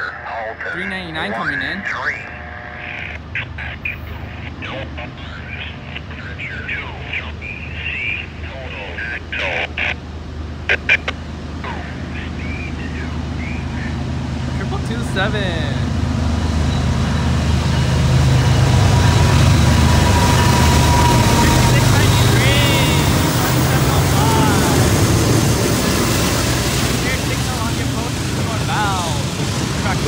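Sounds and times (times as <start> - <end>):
diesel locomotives droning: 0.0 - 30.0.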